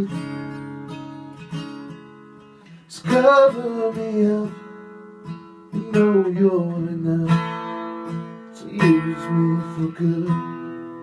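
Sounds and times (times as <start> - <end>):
acoustic guitar chords strummed: 0.0 - 11.0.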